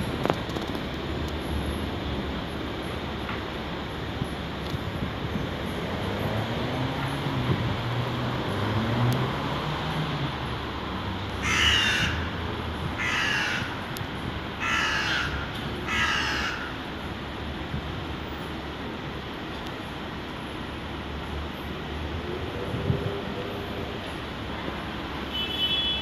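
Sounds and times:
steady outdoor rumble: 0:00.0 - 0:26.0
crow cawing: 0:11.4 - 0:12.4, 0:13.0 - 0:13.9, 0:14.6 - 0:16.8.

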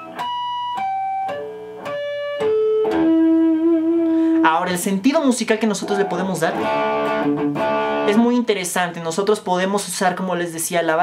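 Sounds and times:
bell-like electric guitar harmonics: 0:05.6 - 0:08.1.

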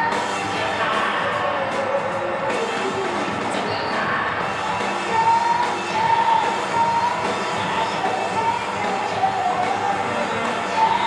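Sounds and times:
drum kit: 0:00.0 - 0:11.0
electric guitar: 0:00.0 - 0:11.0.

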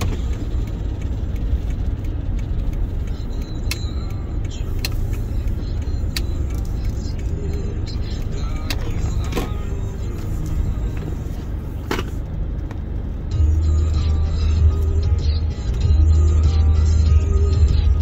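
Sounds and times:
car driving rumble from inside: 0:00.0 - 0:18.0.

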